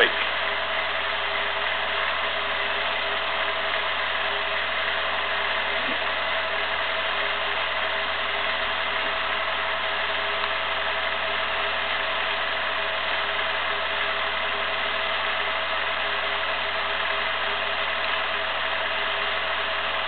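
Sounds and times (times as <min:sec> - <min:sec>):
film projector whirring and clattering: 0:00.0 - 0:20.0
steady hum: 0:00.0 - 0:20.0.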